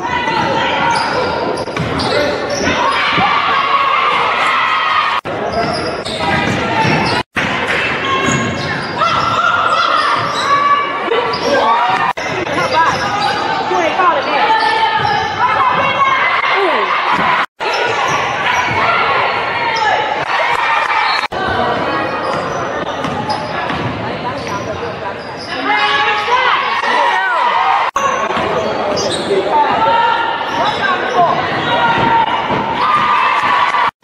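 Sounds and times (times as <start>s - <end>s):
people calling out: 0.0s - 22.4s, 25.4s - 33.9s
sneakers squeaking: 0.0s - 27.0s, 28.0s - 33.9s.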